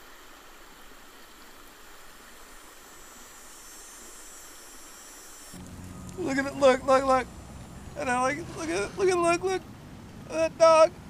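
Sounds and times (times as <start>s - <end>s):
river water hissing over shallows: 0.0s - 11.0s
low outdoor rumble: 5.6s - 11.0s.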